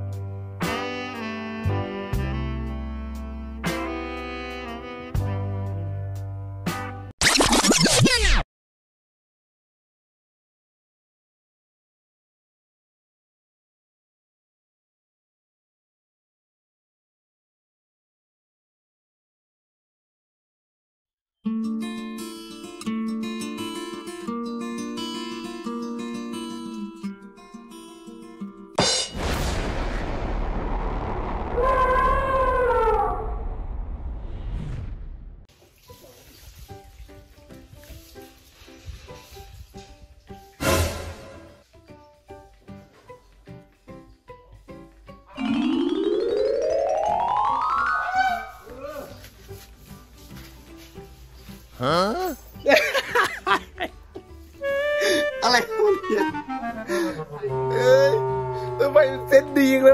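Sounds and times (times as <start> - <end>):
turntable scratches: 7.2 - 8.4
music of short separate notes: 45.4 - 51.1
elephant trumpet call: 48.0 - 48.7.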